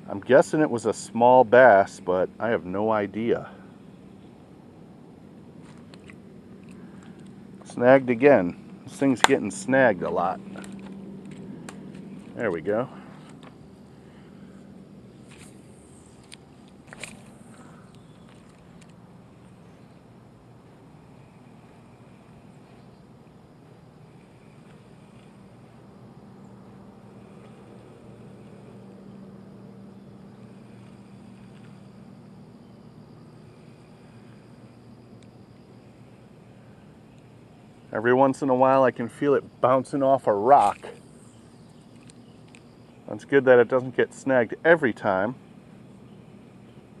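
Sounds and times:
faint low hum: 0.0s - 47.0s.

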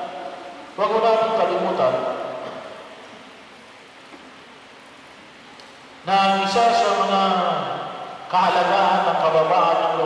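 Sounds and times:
echo of man's voice: 0.0s - 2.7s, 6.0s - 10.0s
low hiss of room noise: 0.0s - 10.0s.

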